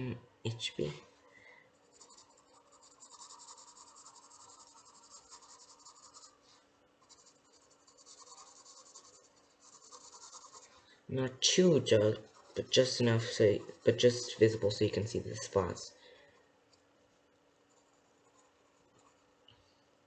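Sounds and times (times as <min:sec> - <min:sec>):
pencil scratching on paper: 0:01.8 - 0:10.8, 0:11.8 - 0:14.7, 0:17.7 - 0:19.3.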